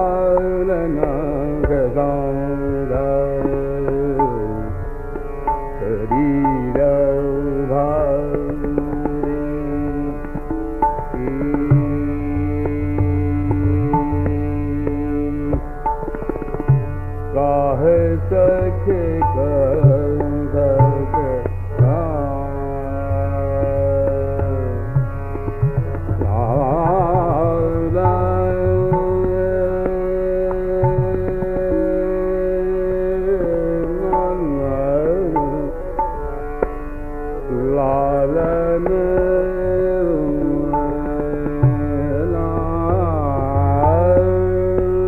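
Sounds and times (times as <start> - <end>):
man singing slow classical phrase: 0.0 - 5.0, 5.8 - 15.8, 17.3 - 25.2, 26.2 - 36.2, 37.5 - 45.0
tabla strokes: 0.0 - 45.0
tanpura drone: 0.0 - 45.0.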